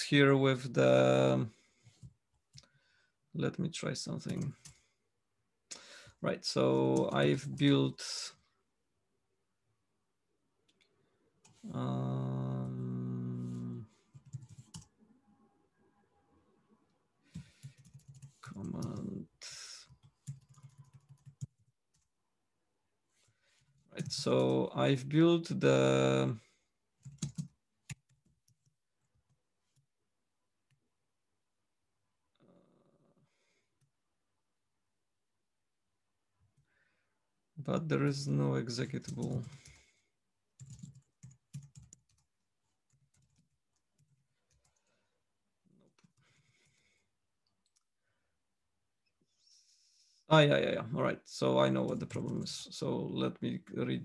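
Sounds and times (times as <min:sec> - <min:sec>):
faint keyboard typing: 0:01.7 - 0:02.8, 0:04.1 - 0:04.9, 0:06.4 - 0:08.2, 0:12.5 - 0:15.0, 0:17.2 - 0:22.2, 0:23.5 - 0:24.8, 0:25.9 - 0:29.9, 0:38.0 - 0:47.9, 0:51.6 - 0:52.8
typing on computer keyboard: 0:14.1 - 0:14.9, 0:17.3 - 0:19.1, 0:19.8 - 0:22.1, 0:27.0 - 0:28.7, 0:39.0 - 0:39.9, 0:40.6 - 0:42.3, 0:42.9 - 0:44.8.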